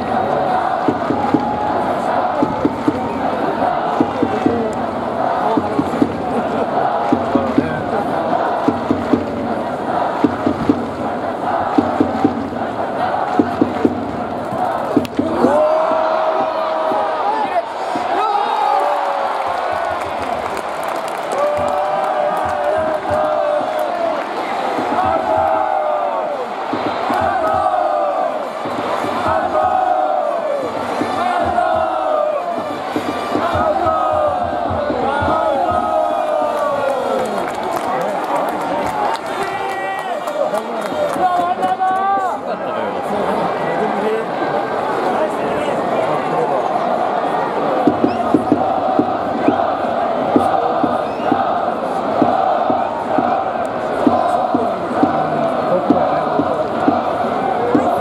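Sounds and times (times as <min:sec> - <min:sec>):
crowd chanting and singing: 0:00.0 - 0:58.0
crowd roar: 0:00.0 - 0:58.0.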